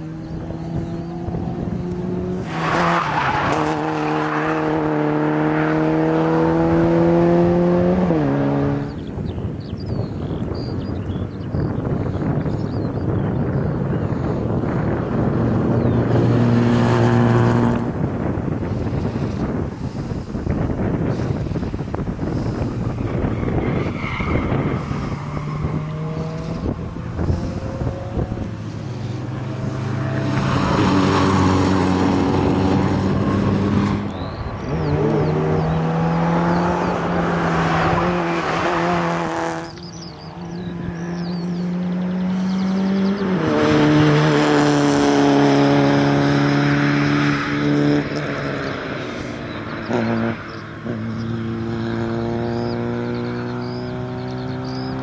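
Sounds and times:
car engine revving hard: 0:00.0 - 0:09.0, 0:14.8 - 0:55.0.

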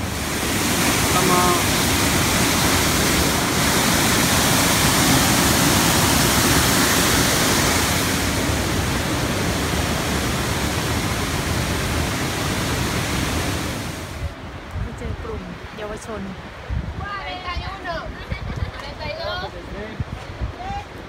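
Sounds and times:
waterfall rushing: 0:00.0 - 0:14.4.

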